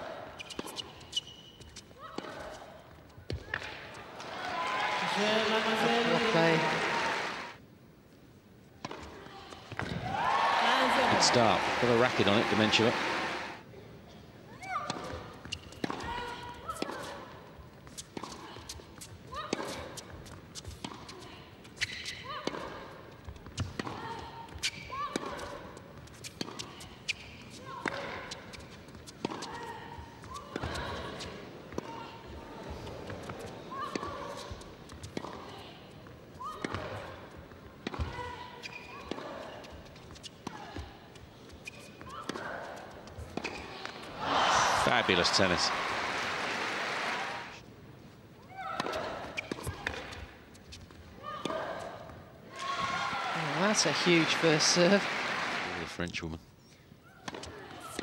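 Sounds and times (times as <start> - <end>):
tennis ball hit by rackets: 15.8 - 16.1, 37.8 - 38.2, 48.8 - 50.2.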